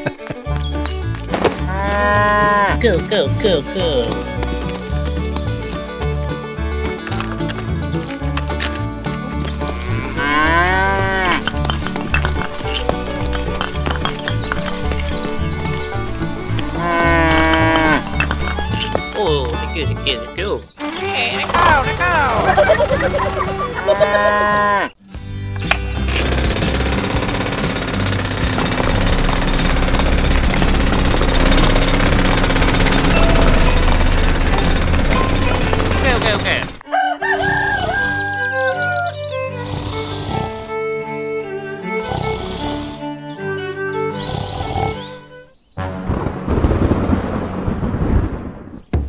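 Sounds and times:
music: 0.0s - 48.1s
toy motor grinding: 9.6s - 19.0s, 20.8s - 21.6s, 26.1s - 36.8s, 39.6s - 40.7s.

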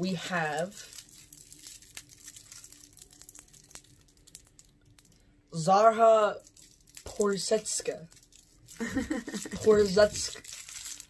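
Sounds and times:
candy wrapper crinkling: 0.0s - 5.4s, 6.3s - 11.0s
small clicks and crackles: 0.5s - 5.3s, 6.4s - 7.2s, 8.0s - 11.0s.

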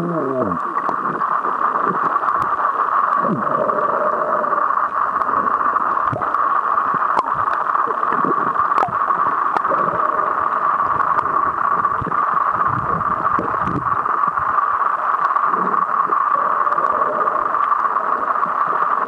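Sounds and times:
bubbling gurgles: 0.0s - 19.0s
muffled underwater hiss: 0.0s - 19.0s.

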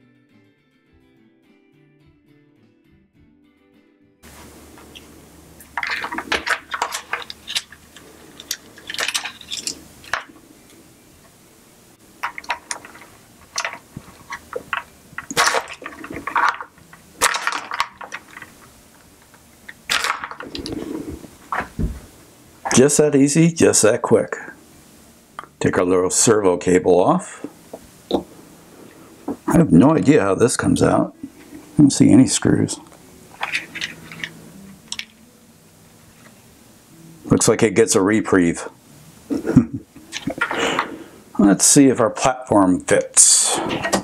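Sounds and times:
faint background music: 0.0s - 44.0s.

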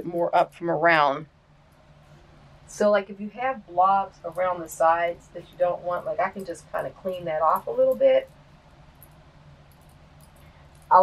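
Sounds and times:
person speaking: 0.0s - 1.2s, 2.7s - 8.2s
steady hum: 0.0s - 11.0s.

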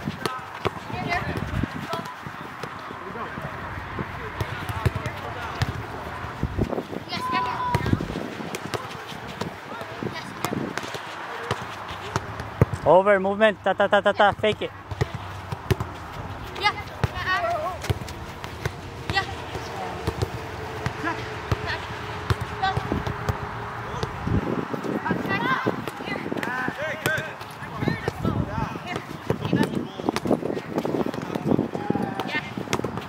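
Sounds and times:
players calling: 0.0s - 33.0s
soccer balls kicked on turf: 0.0s - 33.0s
running footsteps: 15.0s - 23.1s.

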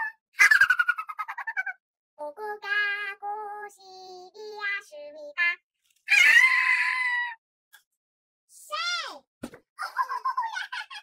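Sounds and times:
person screaming: 6.1s - 7.4s.

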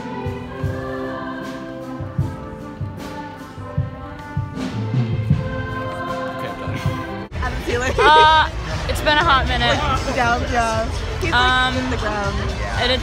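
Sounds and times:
choir singing held notes: 8.0s - 8.5s.

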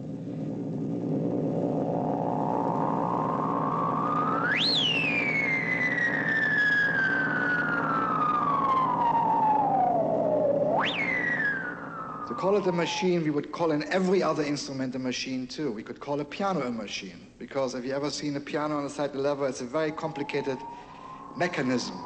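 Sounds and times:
low drone: 0.0s - 14.3s, 19.3s - 22.0s
electronic gliding tone: 0.7s - 13.8s, 19.4s - 22.0s.

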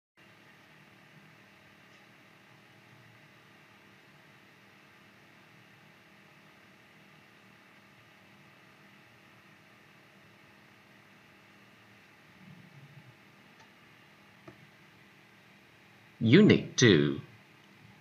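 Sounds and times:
faint background hiss: 0.2s - 18.0s.

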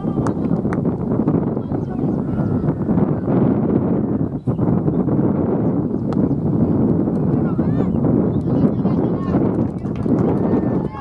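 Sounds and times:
low rushing microphone noise: 0.0s - 11.0s.

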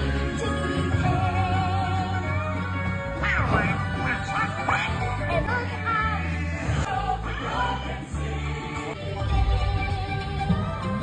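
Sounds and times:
orchestral music: 0.0s - 11.0s
raspy quacking cartoon voice: 3.2s - 6.2s.

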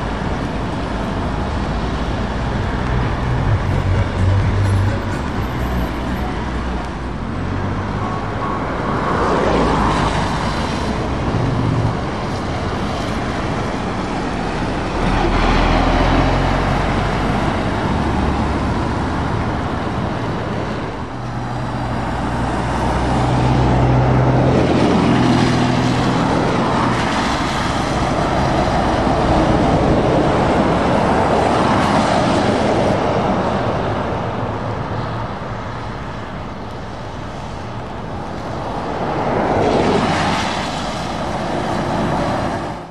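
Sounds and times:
trucks and cars passing: 0.0s - 42.9s
tyres hissing on wet road: 0.0s - 42.9s.

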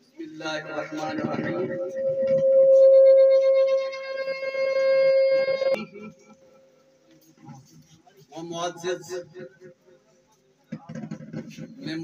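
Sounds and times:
microphone feedback howl: 0.8s - 5.8s.

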